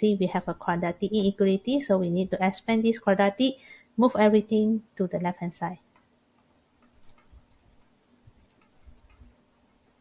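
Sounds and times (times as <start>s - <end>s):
stylus tapping on screen: 5.8s - 10.0s.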